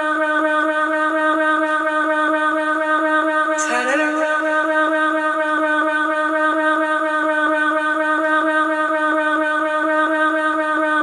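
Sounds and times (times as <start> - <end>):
woman singing long note: 3.4 - 11.0.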